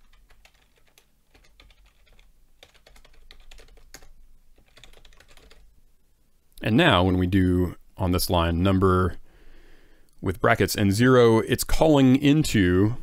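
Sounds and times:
computer keyboard typing: 0.0 - 5.7.

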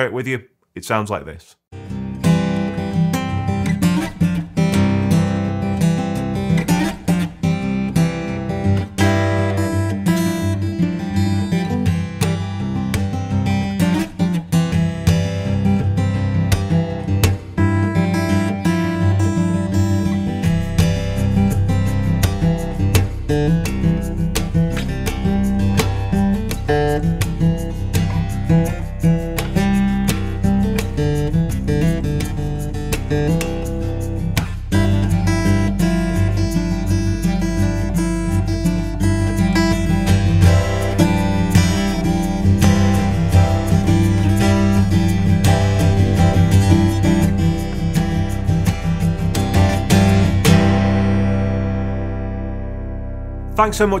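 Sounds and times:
fingerpicked acoustic guitar: 1.8 - 53.9.

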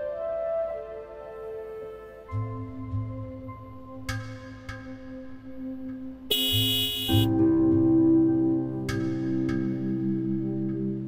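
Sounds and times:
ambient music with held chords: 0.0 - 11.0.

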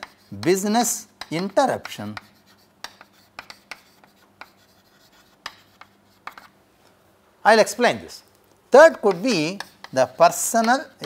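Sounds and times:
chalk tapping and scratching: 0.0 - 6.6, 8.8 - 11.0.

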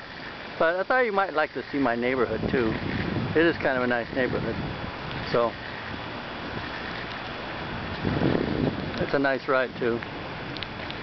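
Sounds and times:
wind on microphone: 1.8 - 11.0.

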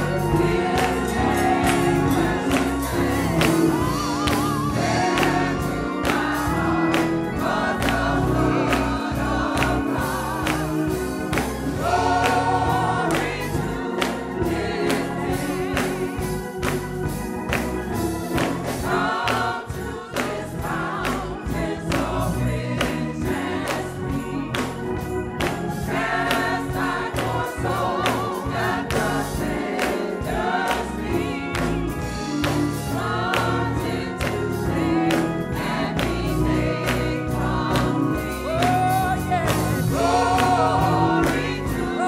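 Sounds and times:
gospel choir singing: 0.0 - 42.0
instrumental accompaniment with beat: 0.0 - 42.0.

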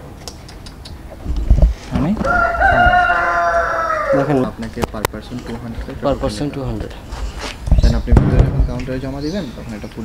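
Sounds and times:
rooster crowing: 2.2 - 4.6.

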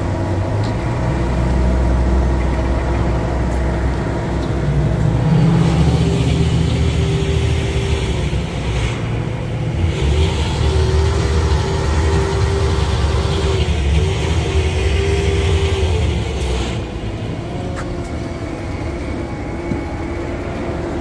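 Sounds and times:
machinery whine: 0.0 - 21.0
truck engine drone: 0.0 - 21.0.

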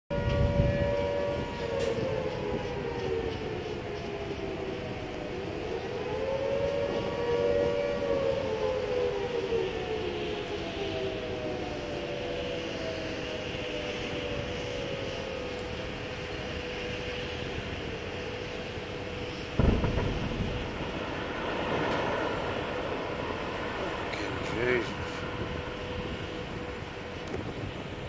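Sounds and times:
warning siren wailing: 0.1 - 28.0.

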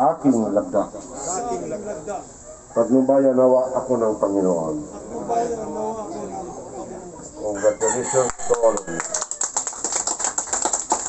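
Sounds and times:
men's voices: 0.0 - 9.2
rooster crowing: 7.5 - 9.5.

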